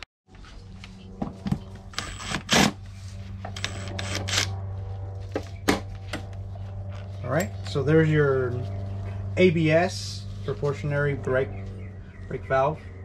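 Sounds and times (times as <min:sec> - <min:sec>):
steady low hum: 0:00.3 - 0:13.0.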